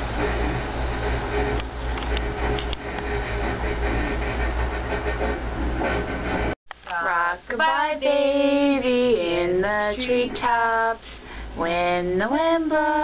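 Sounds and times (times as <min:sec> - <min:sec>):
cable car cabin rumble and hum: 0:00.0 - 0:06.6.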